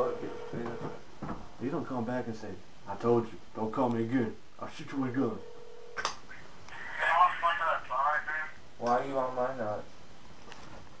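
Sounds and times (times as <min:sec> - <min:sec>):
man speaking: 0:00.0 - 0:01.0, 0:06.7 - 0:09.9
voice over telephone: 0:06.7 - 0:08.6.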